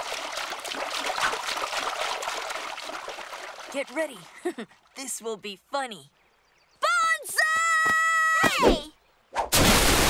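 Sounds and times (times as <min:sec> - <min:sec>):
swimmer splashing water: 0:00.0 - 0:04.9.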